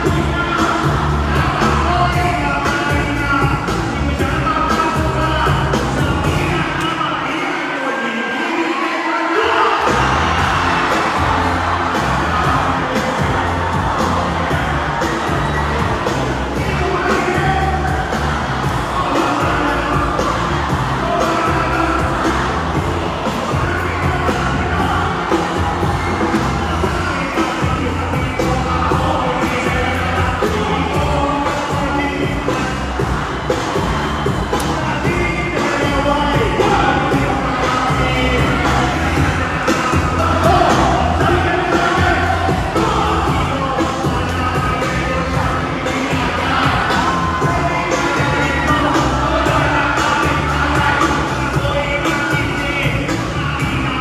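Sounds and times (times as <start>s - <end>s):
crowd cheering and shouting: 0.0s - 54.0s
rap track with heavy bass beat: 0.0s - 54.0s.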